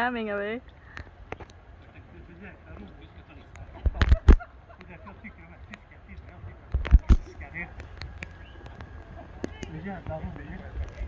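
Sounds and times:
faint voices: 1.8s - 11.0s
people laughing: 3.5s - 5.6s, 9.0s - 9.6s.

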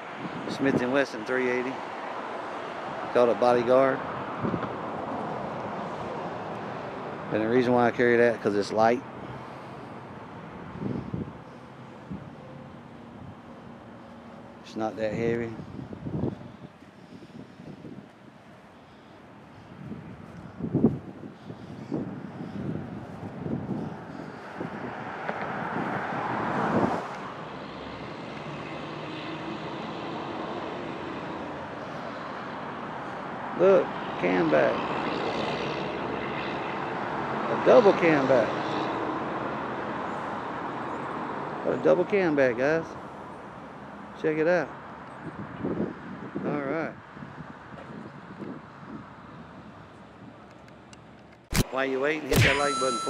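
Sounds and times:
wind buffeting microphone: 0.0s - 0.9s, 4.2s - 5.2s, 10.5s - 12.4s, 15.0s - 18.3s, 19.5s - 27.3s, 45.1s - 50.5s
vehicle passing: 0.0s - 42.0s
faint distant traffic hum: 0.0s - 53.0s.

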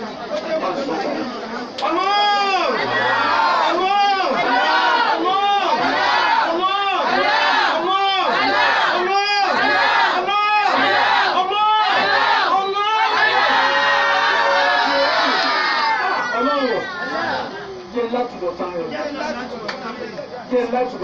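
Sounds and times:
voices chanting in unison: 2.6s - 16.0s.

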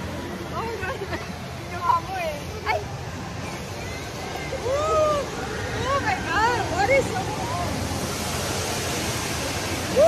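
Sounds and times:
rushing and splashing water: 0.0s - 10.0s.

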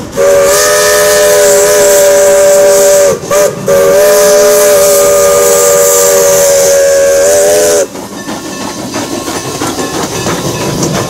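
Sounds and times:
steam locomotive chime whistle: 0.0s - 8.7s
steam hissing: 0.0s - 11.0s.

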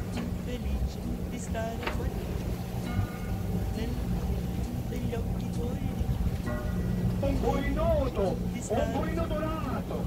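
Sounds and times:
boat engine running: 0.0s - 10.0s
water noise: 0.0s - 10.0s.

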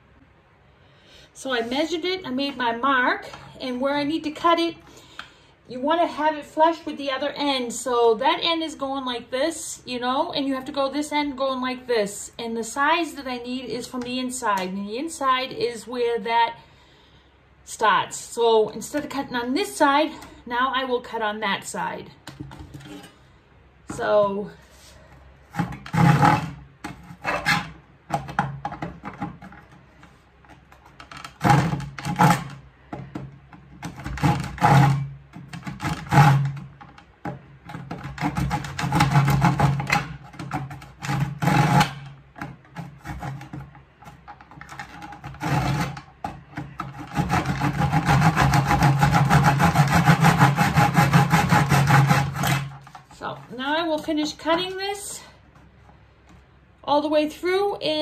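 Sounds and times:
handsaw cutting wood: 25.5s - 27.8s, 31.3s - 32.6s, 33.9s - 36.6s, 37.8s - 42.1s, 42.7s - 52.9s.

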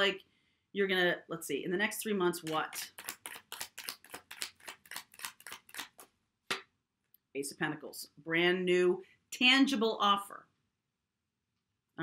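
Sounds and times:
cards being shuffled: 2.4s - 6.6s.

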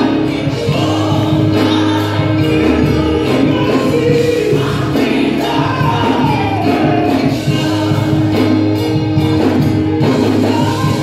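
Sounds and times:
man singing into a microphone: 0.0s - 8.6s, 10.1s - 11.0s
band accompaniment: 0.0s - 11.0s.

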